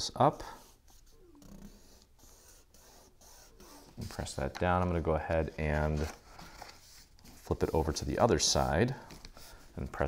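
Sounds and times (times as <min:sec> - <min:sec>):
cardstock rustling and scraping: 0:00.6 - 0:10.0.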